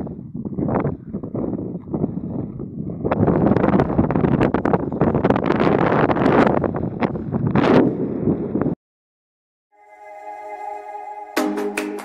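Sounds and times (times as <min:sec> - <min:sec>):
wind buffeting microphone: 0:00.0 - 0:08.8.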